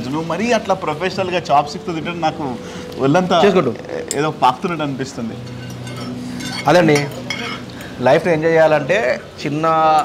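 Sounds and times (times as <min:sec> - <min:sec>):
forks scraping on plates: 0:05.4 - 0:08.0.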